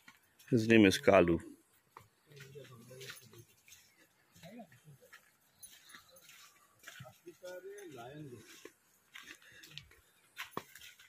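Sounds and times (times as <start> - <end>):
footsteps in leaf litter: 2.3 - 11.0.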